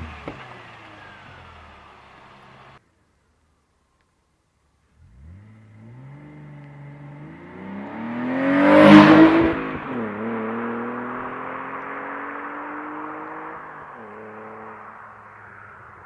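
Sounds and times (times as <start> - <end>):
car accelerating past: 5.0 - 16.0.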